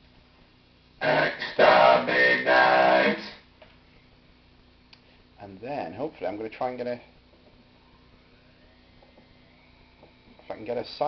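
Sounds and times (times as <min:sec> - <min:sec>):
robotic modulated man's voice: 0:01.0 - 0:03.4.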